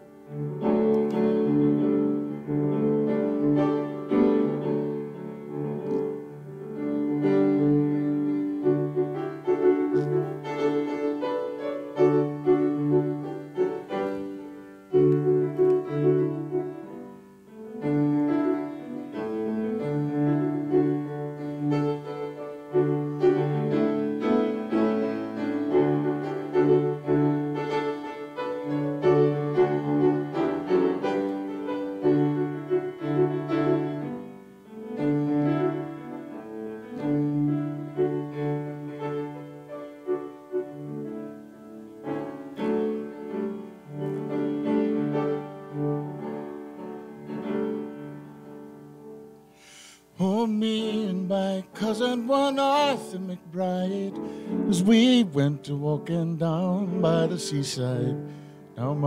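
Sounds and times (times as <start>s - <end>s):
electric keyboard chords and melody: 0.0s - 59.0s.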